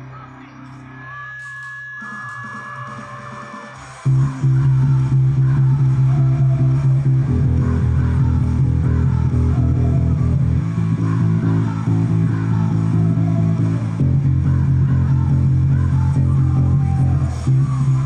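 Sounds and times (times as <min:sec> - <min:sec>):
recorded rock song: 0:00.0 - 0:18.0
electric bass playing: 0:03.8 - 0:18.0.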